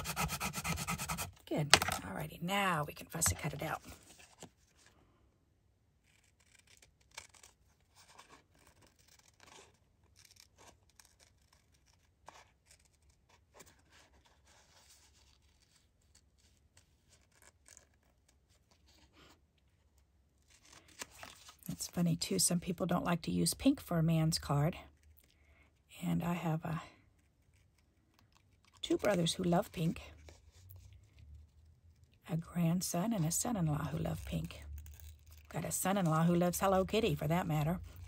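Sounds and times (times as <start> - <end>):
scissors snipping paper: 0.0 - 2.0.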